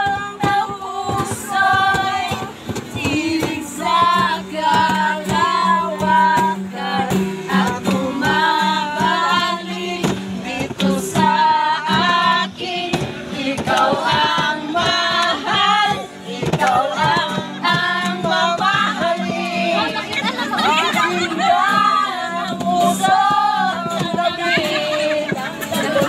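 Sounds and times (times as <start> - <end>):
group singing: 0.0 - 26.0
strummed acoustic guitar: 0.0 - 26.0.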